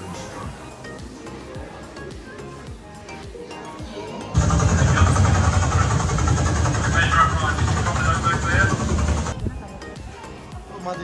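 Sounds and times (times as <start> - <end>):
helicopter engine and rotor rumble: 4.4 - 9.4
voices over speakers: 4.4 - 9.4.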